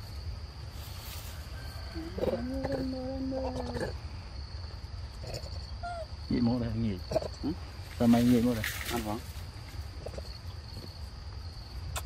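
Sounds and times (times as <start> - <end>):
high insect drone: 0.0 - 12.0
long low voice: 2.0 - 3.8.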